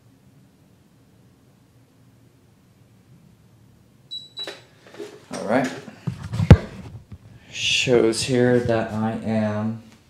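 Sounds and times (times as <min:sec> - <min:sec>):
scale beeping: 0:04.1 - 0:04.7.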